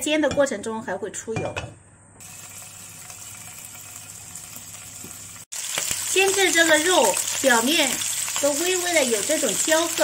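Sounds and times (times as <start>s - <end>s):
oil sizzling in a wok: 2.2s - 10.0s
pork frying: 2.2s - 10.0s.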